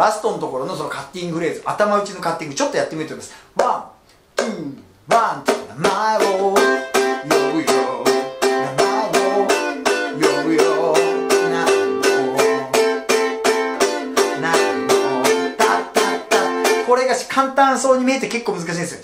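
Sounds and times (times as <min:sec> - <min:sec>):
man singing: 0:03.6 - 0:18.7
ukulele strumming muted strokes: 0:04.4 - 0:17.0.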